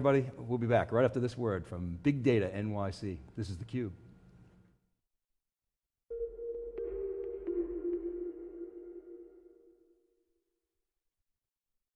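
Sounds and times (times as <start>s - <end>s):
electronic music sting: 6.1s - 9.8s.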